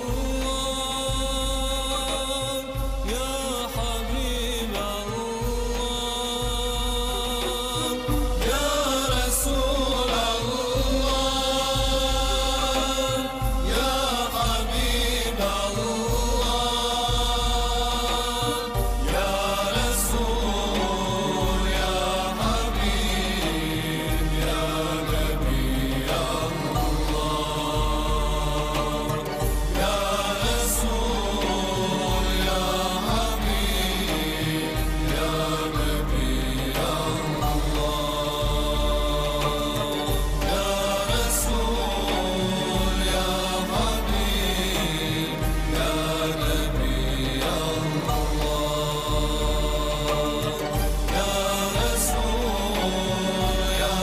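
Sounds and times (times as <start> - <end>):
choir singing devotional song: 0.0 - 54.0.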